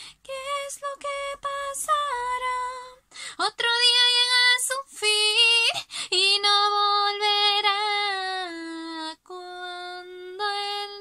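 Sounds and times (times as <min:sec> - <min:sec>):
woman singing a cappella: 0:00.0 - 0:11.0.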